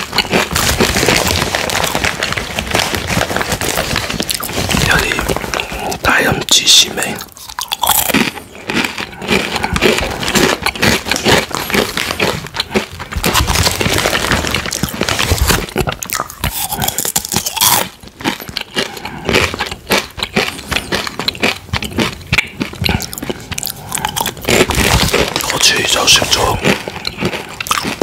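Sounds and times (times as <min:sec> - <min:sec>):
chewing crisp chips: 0:00.0 - 0:28.0.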